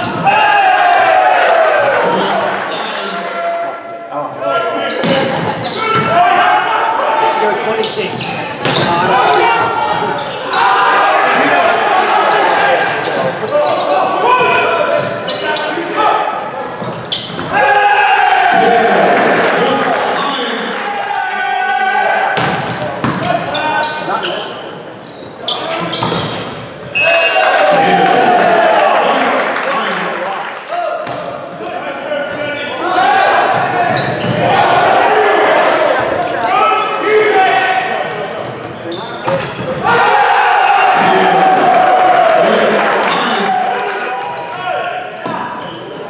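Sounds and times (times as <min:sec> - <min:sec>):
players and spectators shouting: 0:00.0 - 0:24.7, 0:26.9 - 0:46.0.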